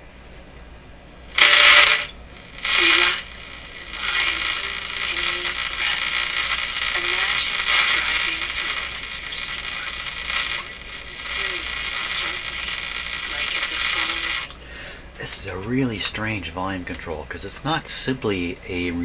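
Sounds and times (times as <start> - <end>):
radio static hiss and crackle: 1.2 - 19.0
faint brief radio tones: 1.4 - 14.5.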